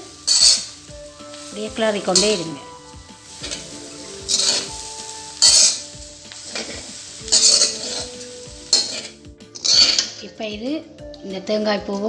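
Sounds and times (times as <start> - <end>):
spatula scraping a metal pan: 0.0 - 10.2
low sizzle: 0.0 - 12.0.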